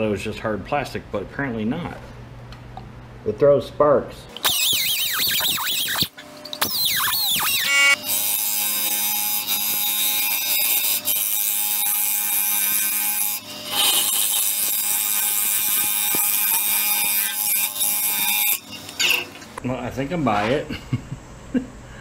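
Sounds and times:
lathe scraper screeching on bowl: 0:04.4 - 0:19.2.

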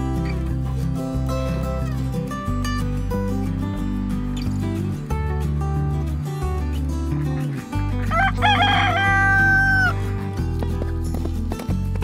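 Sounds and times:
background music with bass: 0:00.0 - 0:12.0
rooster crowing: 0:08.1 - 0:10.0.

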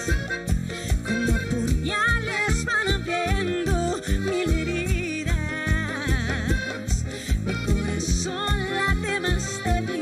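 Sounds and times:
band with accordion and drum: 0:00.0 - 0:10.0
woman singing: 0:01.0 - 0:10.0.

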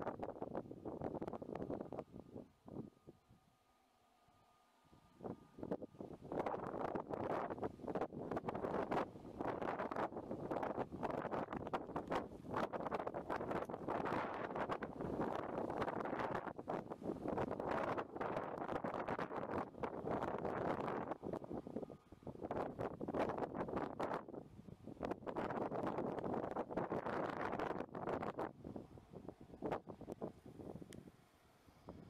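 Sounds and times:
wind buffeting microphone: 0:00.0 - 0:03.3, 0:05.1 - 0:32.0.

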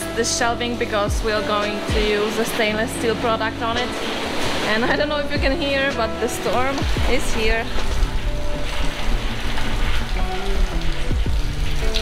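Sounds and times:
background music: 0:00.0 - 0:12.0
heavy rain pouring: 0:00.0 - 0:12.0.

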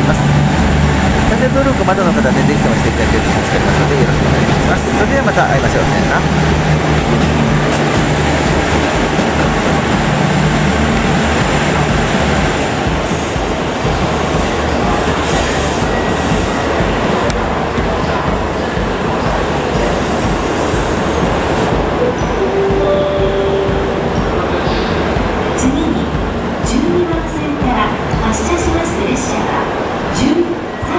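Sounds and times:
diesel train engine: 0:00.0 - 0:30.9
wheels on rail: 0:00.0 - 0:30.9.

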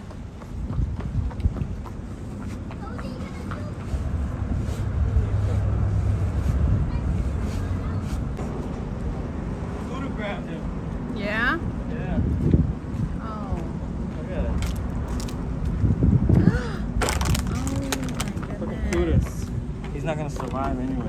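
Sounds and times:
wind buffeting microphone: 0:00.0 - 0:09.8, 0:11.1 - 0:21.0.

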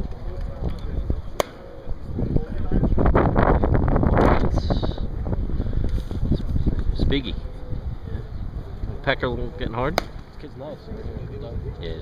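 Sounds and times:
wind gusts on microphone: 0:00.0 - 0:12.0
bat cracking a ball: 0:01.3 - 0:01.8, 0:09.9 - 0:10.3.

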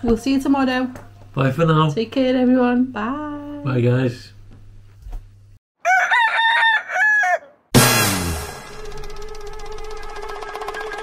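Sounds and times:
rooster crowing: 0:05.8 - 0:07.7
loud sudden hit: 0:07.8 - 0:09.3.

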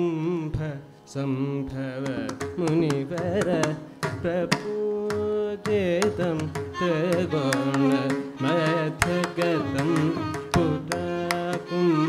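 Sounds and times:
man singing long held notes: 0:00.0 - 0:12.0.

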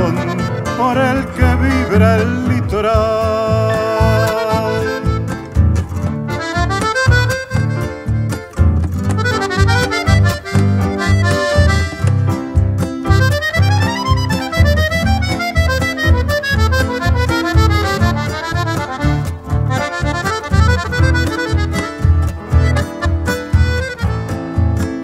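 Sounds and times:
accordion playing quick runs: 0:00.0 - 0:02.3, 0:03.7 - 0:25.0
pulsing low accompaniment: 0:01.4 - 0:25.0.

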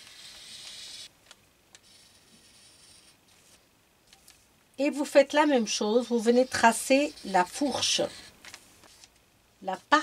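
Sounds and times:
marker scratching on paper: 0:00.0 - 0:01.1, 0:01.8 - 0:03.6, 0:05.4 - 0:09.1.

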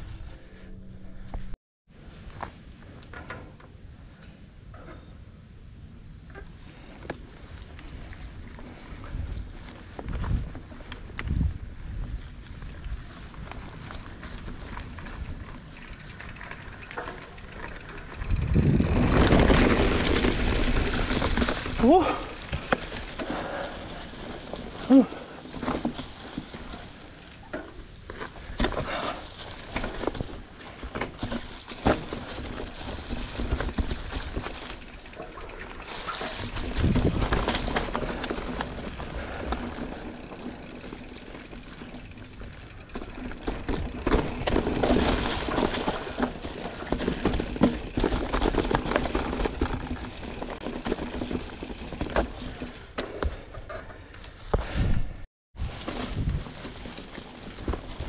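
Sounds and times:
wind noise on microphone: 0:07.9 - 0:14.0, 0:18.2 - 0:21.8, 0:36.2 - 0:37.8, 0:54.6 - 0:56.6
tyres crunching through leaves: 0:11.8 - 0:27.4, 0:28.1 - 0:52.8
bike knocks and rattles: 0:13.2 - 0:55.0, 0:55.6 - 0:58.0.

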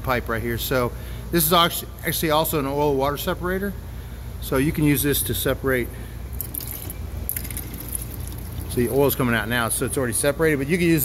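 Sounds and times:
steady low hum: 0:00.0 - 0:11.0
oil trickling and splashing: 0:06.4 - 0:09.2.

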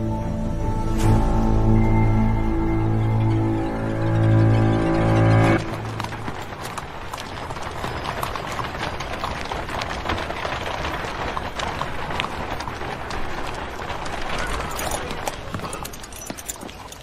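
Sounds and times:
busy street bustle: 0:00.0 - 0:17.0
horse hooves clip-clopping on stone: 0:03.6 - 0:17.0.

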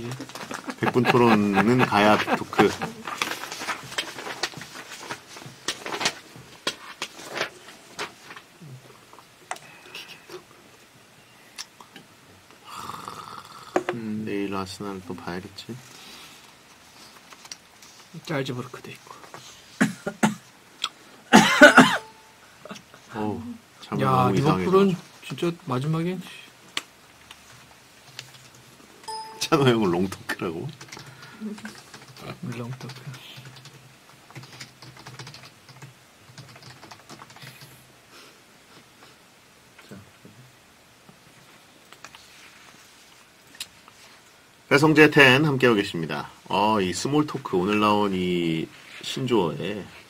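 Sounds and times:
computer keyboard typing: 0:29.1 - 0:37.7.

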